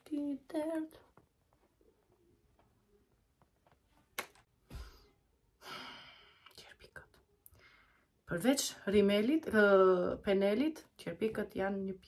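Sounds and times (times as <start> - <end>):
woman sighing: 5.6 - 6.4.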